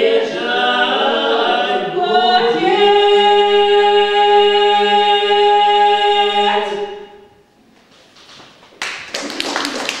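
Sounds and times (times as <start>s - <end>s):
a cappella group singing: 0.0s - 7.4s
audience applause: 8.8s - 10.0s.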